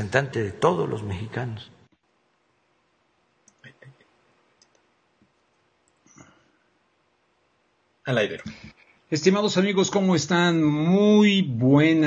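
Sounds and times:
faint clicks: 3.4s - 6.3s.

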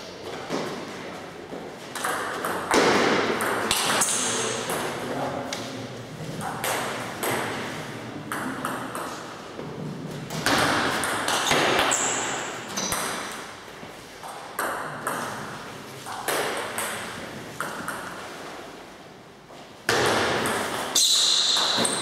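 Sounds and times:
table tennis ball hits: 1.9s - 5.0s, 6.4s - 9.5s, 10.3s - 13.6s, 14.2s - 18.3s, 19.8s - 22.0s.

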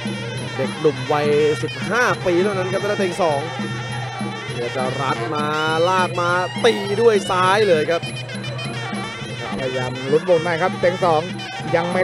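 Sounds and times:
reedy oboe wavering melody: 0.0s - 12.0s.

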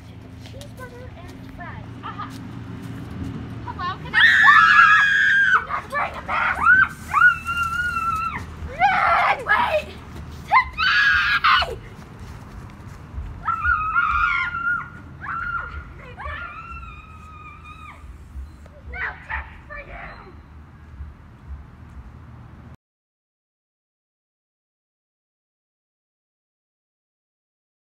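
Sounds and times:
child shrieking and squealing: 4.1s - 9.9s, 10.5s - 11.8s, 13.4s - 18.2s.

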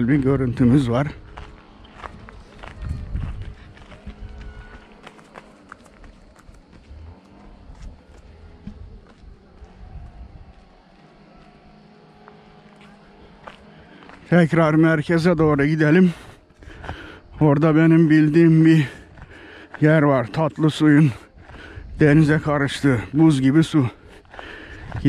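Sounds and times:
footsteps on dirt path: 0.0s - 25.0s.

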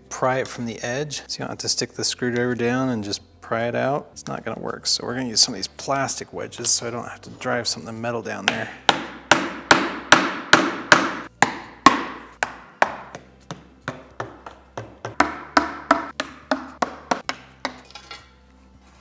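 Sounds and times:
hammer tapping plastic wedges: 8.5s - 18.0s.

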